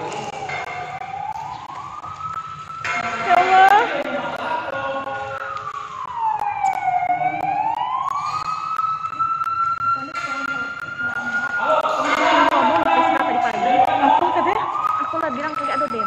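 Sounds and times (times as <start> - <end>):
siren wailing: 0.0 - 16.0.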